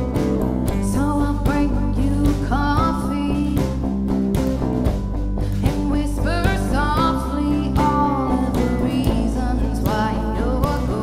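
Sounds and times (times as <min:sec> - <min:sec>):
acoustic rock band playing: 0:00.0 - 0:11.0
woman singing: 0:00.7 - 0:03.8, 0:05.5 - 0:11.0.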